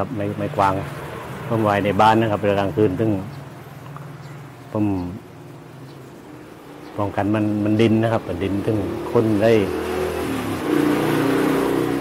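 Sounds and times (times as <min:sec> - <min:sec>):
vehicle engine passing by: 0:05.9 - 0:12.0.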